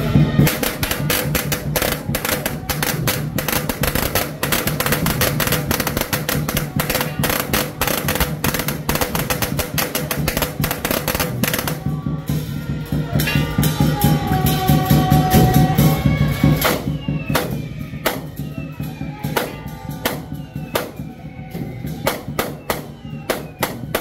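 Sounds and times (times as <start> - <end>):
firecrackers popping: 0.0 - 11.9, 16.4 - 24.0.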